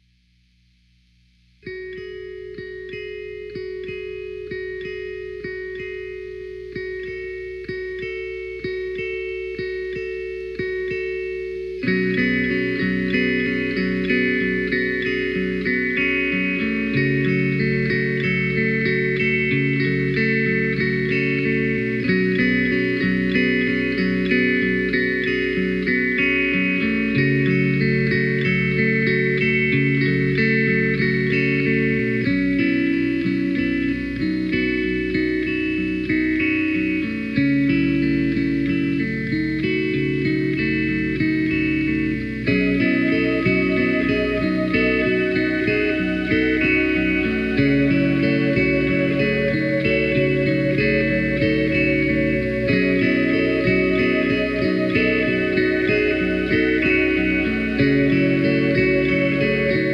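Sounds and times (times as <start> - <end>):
lower guitar notes: 1.5 - 59.9
picked high guitar notes: 1.6 - 59.9.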